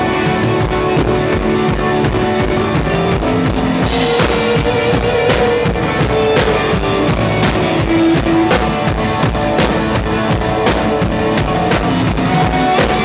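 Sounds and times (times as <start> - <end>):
held guitar notes: 0.0 - 13.0
live rock band playing: 0.0 - 13.0.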